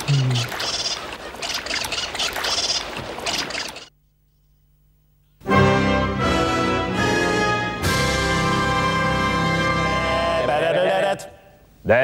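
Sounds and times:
water splashing and sloshing: 0.4s - 3.9s.

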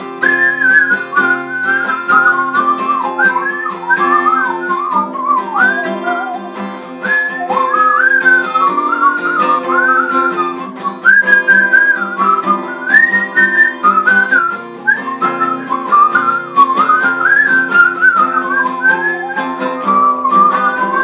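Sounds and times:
strummed guitar chords: 0.0s - 21.0s
whistled melody: 0.0s - 21.0s.

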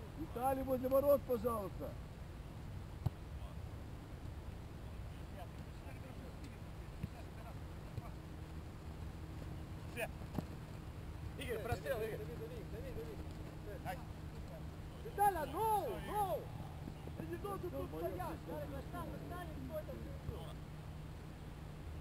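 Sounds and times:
soccer ball kicked thuds: 3.0s - 3.2s, 10.2s - 10.8s
distant players shouting: 11.4s - 20.4s.

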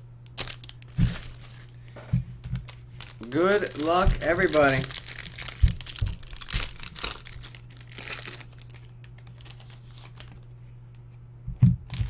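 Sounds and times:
plastic packaging crinkling: 0.3s - 10.5s
man's voice: 3.2s - 4.9s.

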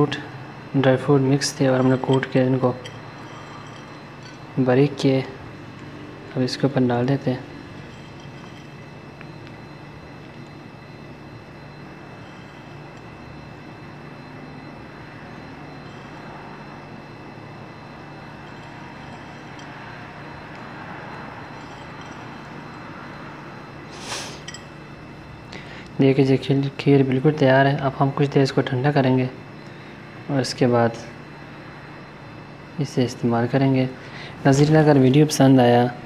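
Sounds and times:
faint whining tones: 0.0s - 36.0s
steady appliance hum: 0.0s - 36.0s.

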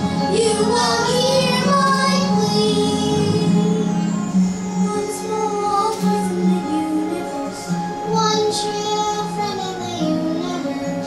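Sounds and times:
instrumental accompaniment: 0.0s - 11.0s
child singing: 0.3s - 3.9s, 4.9s - 11.0s.

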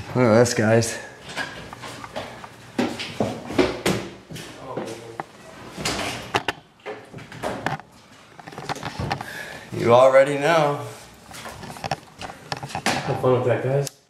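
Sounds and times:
handling knocks and clicks: 1.3s - 9.3s, 11.3s - 13.2s.

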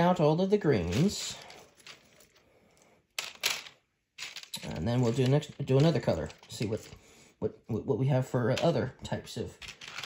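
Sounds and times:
plastic game pieces clicking: 3.2s - 7.0s, 9.6s - 10.0s.

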